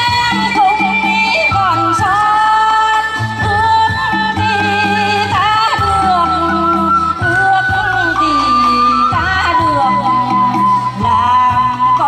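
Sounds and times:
backing track with bass line: 0.0 - 12.0.

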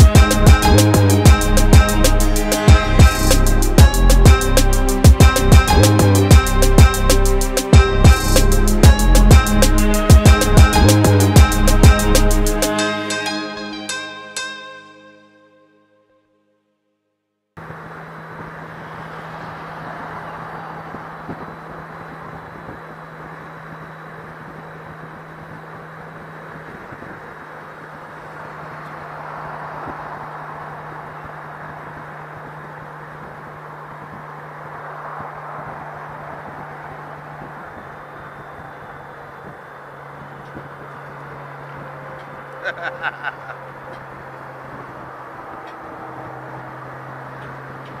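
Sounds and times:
low motorcycle engine drone: 0.0 - 14.5, 17.6 - 48.0
wind rush over microphone: 20.8 - 42.0.

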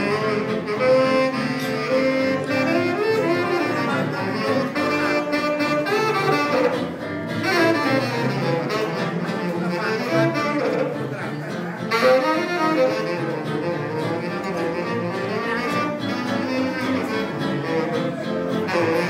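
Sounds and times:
saxophone playing jazz: 0.0 - 19.0
walking double bass: 0.0 - 19.0.

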